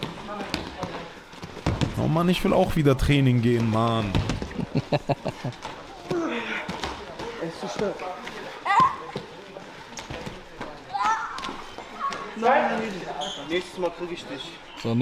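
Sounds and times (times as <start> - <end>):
bodies thudding on mats: 0.0 - 2.0
voices in a hall: 0.0 - 15.0
man laughing: 4.5 - 5.6.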